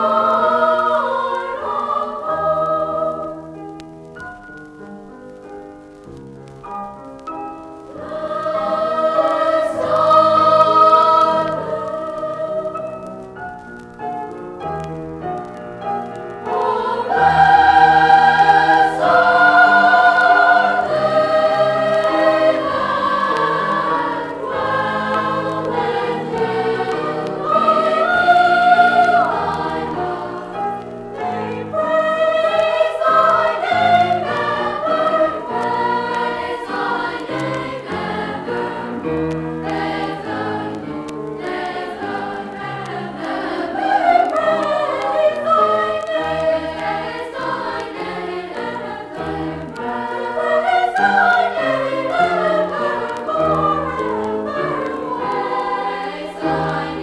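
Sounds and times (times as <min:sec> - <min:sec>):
choir singing held chords: 0:00.0 - 0:04.9, 0:07.7 - 0:14.0, 0:14.6 - 0:57.0.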